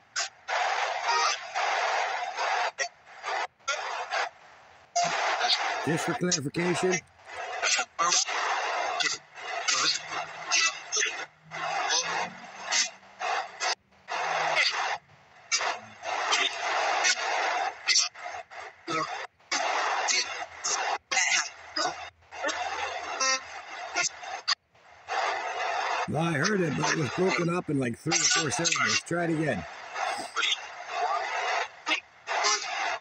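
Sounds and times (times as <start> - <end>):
choppy radio static: 5.9 - 7.0, 26.1 - 30.4
snatches of radio voices: 5.9 - 7.0, 26.1 - 30.4.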